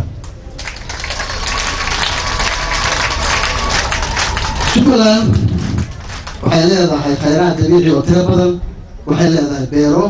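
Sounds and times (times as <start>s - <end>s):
audience applauding: 0.5s - 6.8s.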